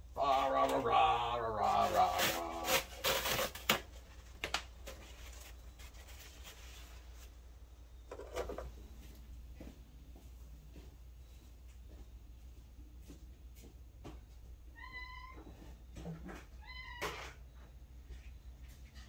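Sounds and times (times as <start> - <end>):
cat meowing: 14.7 - 15.5.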